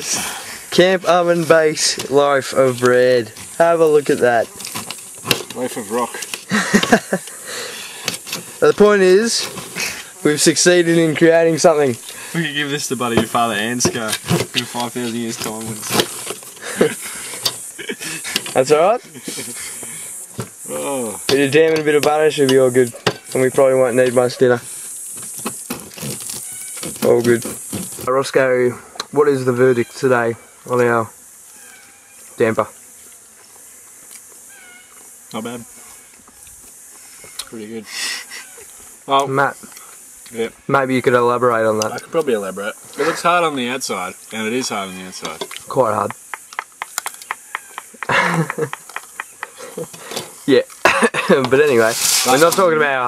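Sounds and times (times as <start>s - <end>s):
high-pitched insect drone: 0.0s - 53.0s
man laughing: 6.5s - 7.9s, 16.6s - 18.4s, 19.0s - 20.0s, 47.6s - 50.2s, 50.8s - 51.5s.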